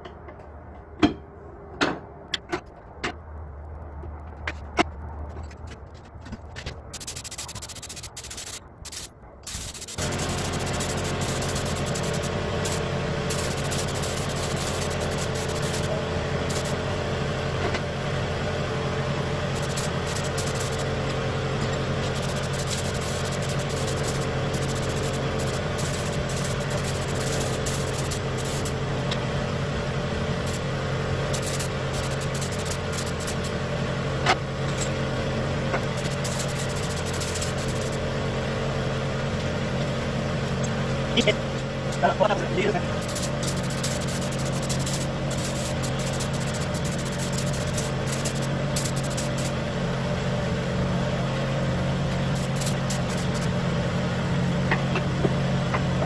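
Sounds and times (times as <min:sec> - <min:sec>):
air compressor running: 0:06.8 - 0:56.0
spray gun hissing: 0:07.0 - 0:16.8, 0:19.4 - 0:21.0, 0:22.0 - 0:28.8, 0:30.3 - 0:33.6, 0:35.8 - 0:38.0, 0:42.9 - 0:49.6, 0:52.2 - 0:53.5.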